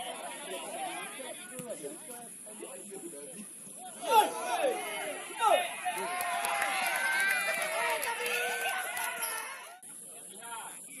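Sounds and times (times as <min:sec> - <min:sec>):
people shouting: 0:03.9 - 0:09.7.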